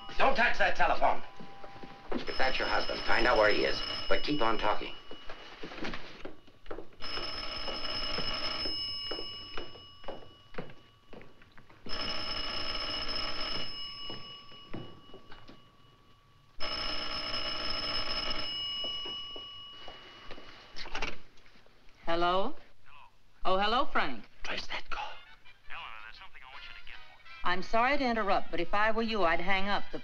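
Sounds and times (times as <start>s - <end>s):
telephone bell ringing: 0.0s - 21.0s.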